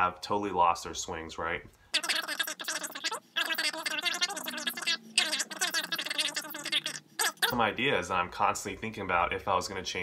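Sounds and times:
fast-forwarded man's speech: 7.4s - 10.0s.

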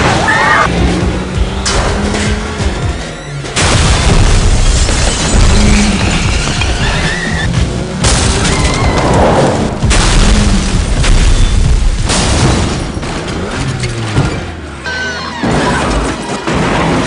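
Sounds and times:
vehicle noise: 0.0s - 17.0s
loud booming impacts: 3.5s - 7.1s, 8.0s - 14.5s.

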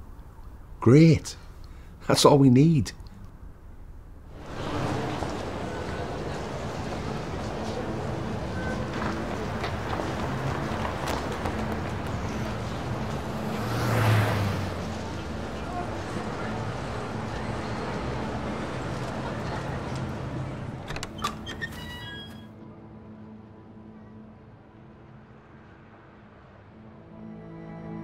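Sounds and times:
street traffic: 0.0s - 27.4s
vehicle passing: 4.3s - 20.8s
shop door clicking open: 20.8s - 22.4s.

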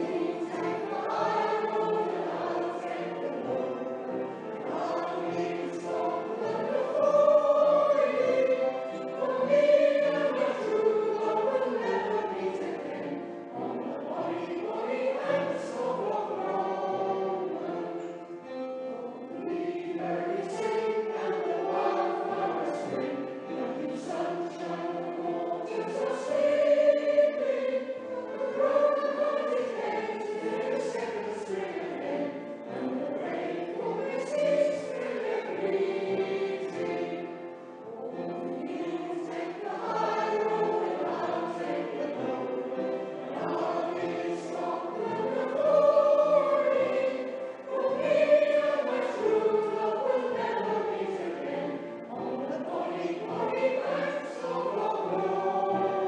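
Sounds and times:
choir singing: 0.0s - 56.0s.

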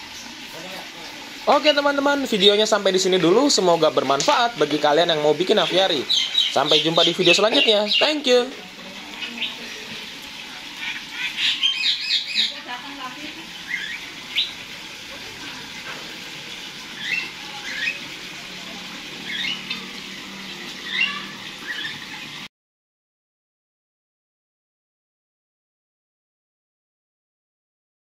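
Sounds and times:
songbirds chirping and squawking: 4.2s - 12.7s, 13.4s - 15.8s, 16.5s - 22.4s.

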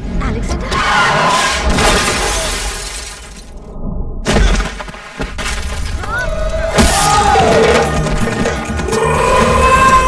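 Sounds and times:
glass shattering: 1.7s - 3.5s.

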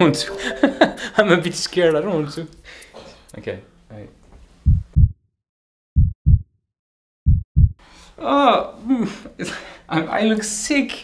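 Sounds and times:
heartbeat double thumps: 4.6s - 5.2s, 6.0s - 6.6s, 7.2s - 7.8s.

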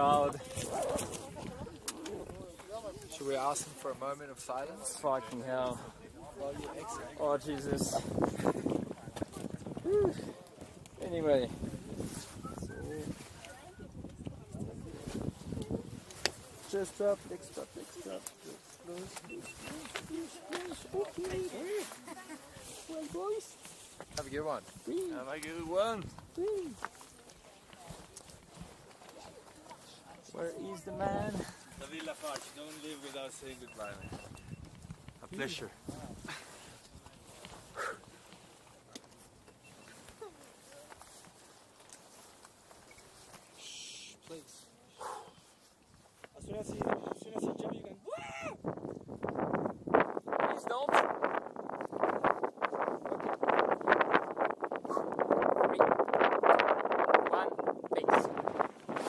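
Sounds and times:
clicks and scuffs on rocky ground: 0.2s - 3.8s, 6.5s - 46.4s
wind buffeting microphone: 5.8s - 17.6s, 46.4s - 59.0s.

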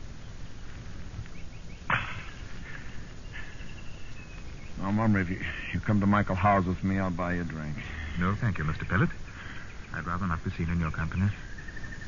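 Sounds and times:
recording hiss: 0.0s - 12.0s.

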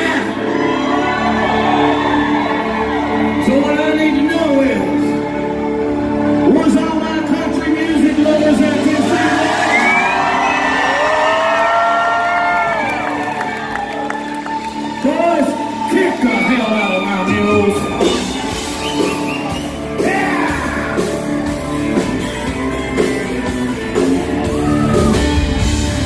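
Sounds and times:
crowd whooping and cheering: 0.0s - 6.9s, 8.6s - 26.0s
country rock band playing: 0.0s - 26.0s.

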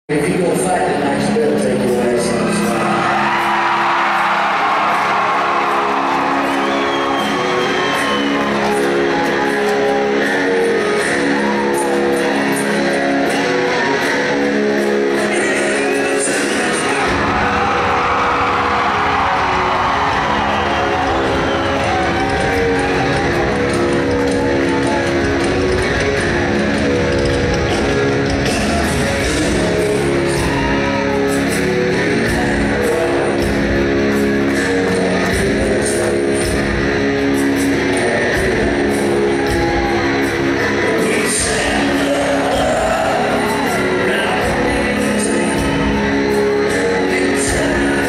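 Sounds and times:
electric guitar chords: 0.1s - 48.0s
rock band playing: 0.1s - 48.0s
crowd cheering and whooping: 2.3s - 33.1s, 38.6s - 48.0s
drums and cymbals: 14.8s - 48.0s.

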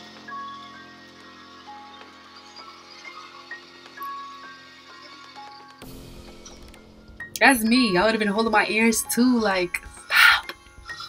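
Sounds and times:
horror film score: 0.0s - 9.0s.

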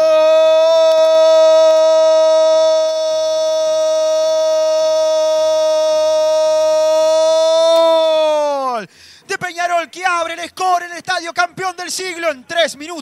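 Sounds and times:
commentator shouting goal: 7.1s - 13.0s.

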